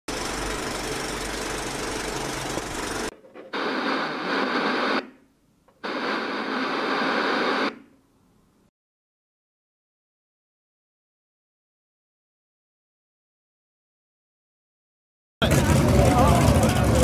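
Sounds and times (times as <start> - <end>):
tv static bursts: 3.5 - 5.1, 5.8 - 7.8.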